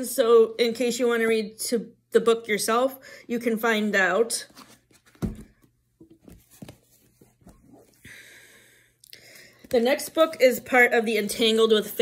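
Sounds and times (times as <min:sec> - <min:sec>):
book thump: 0:04.6 - 0:07.7.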